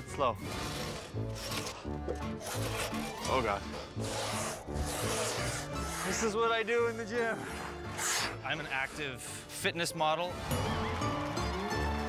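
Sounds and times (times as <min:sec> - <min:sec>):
saw rasping through wood: 0:00.0 - 0:09.7.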